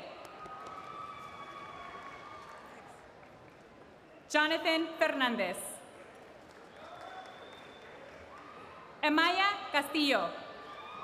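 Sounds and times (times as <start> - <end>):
large hall background noise: 0.0 - 11.0.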